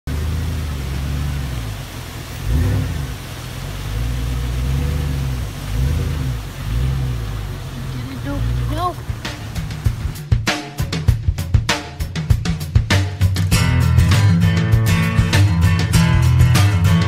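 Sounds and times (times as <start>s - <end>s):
car engine rumbling: 0.0s - 10.4s
tyres on gravel road: 0.0s - 10.4s.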